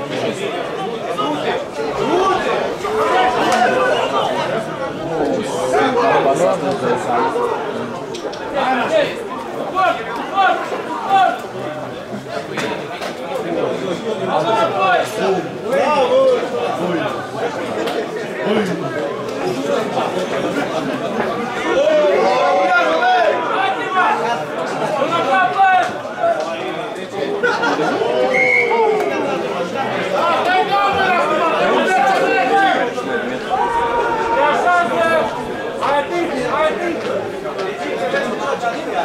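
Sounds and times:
people talking at once: 0.0s - 39.0s
spectators chatting: 0.0s - 39.0s.

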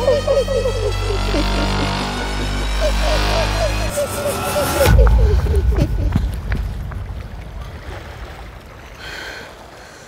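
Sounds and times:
heavy low rumble: 0.0s - 8.9s.

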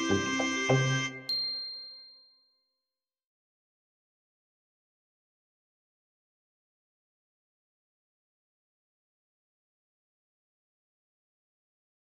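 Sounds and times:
background music: 0.0s - 1.6s
high bell-like ding: 0.0s - 2.5s.

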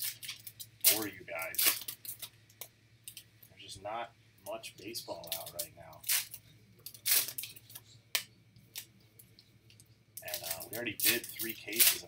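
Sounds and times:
foil wrapper crinkling: 0.0s - 2.3s, 5.2s - 7.8s, 10.2s - 12.0s.

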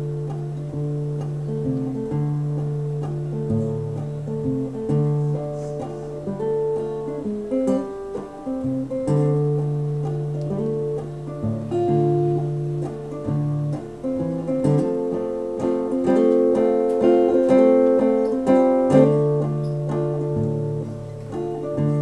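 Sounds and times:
acoustic guitar picked melody: 0.0s - 22.0s.

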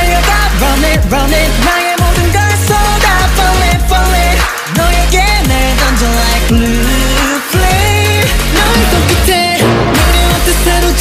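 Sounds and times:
electronic pop beat: 0.0s - 11.0s
man singing: 0.0s - 11.0s
deep sliding bass notes: 5.0s - 11.0s.

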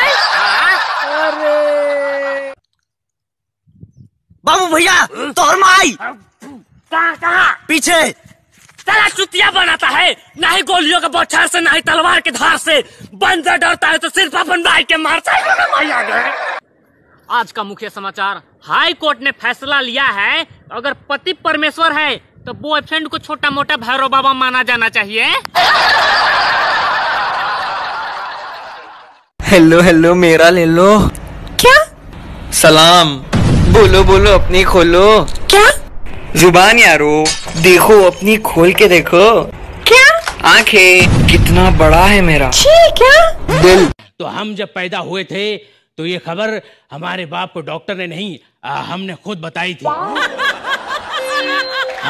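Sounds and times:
crowd laughing: 0.0s - 1.7s, 15.3s - 16.6s, 25.5s - 29.3s, 49.9s - 52.0s
held musical tone: 51.2s - 52.0s.

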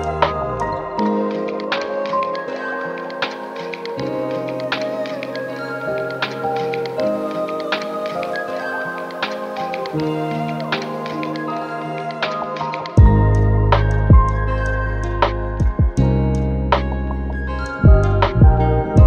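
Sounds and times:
lo-fi hip hop music: 0.0s - 19.0s.

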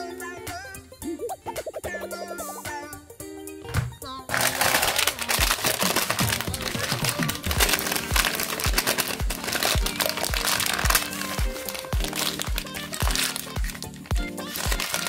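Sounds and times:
background music with steady beat: 0.0s - 15.0s
paper crinkling and rustling: 4.3s - 15.0s.

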